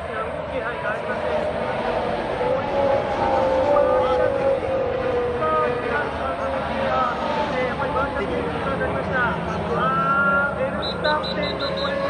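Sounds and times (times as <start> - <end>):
commentator talking over loudspeakers: 0.0 - 12.0.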